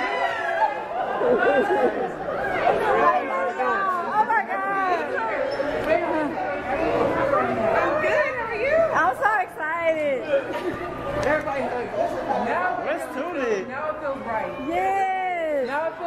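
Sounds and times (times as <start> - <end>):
overlapping conversational chatter: 0.0 - 16.0.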